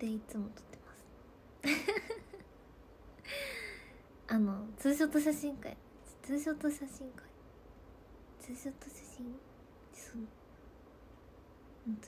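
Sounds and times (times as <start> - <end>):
woman speaking softly: 0.0 - 1.1, 4.3 - 7.4, 8.4 - 10.4.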